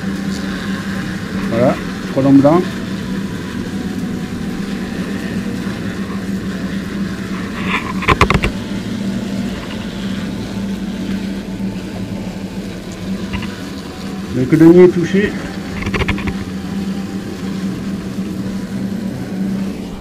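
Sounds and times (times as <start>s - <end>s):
powered duster motor hum: 0.0s - 20.0s.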